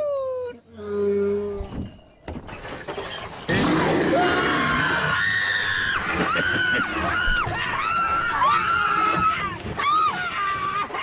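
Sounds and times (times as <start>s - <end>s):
people screaming: 3.6s - 11.0s.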